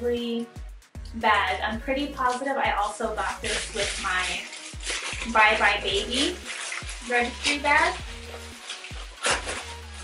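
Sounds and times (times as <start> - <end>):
plastic wrapping crinkling: 2.2 - 10.0.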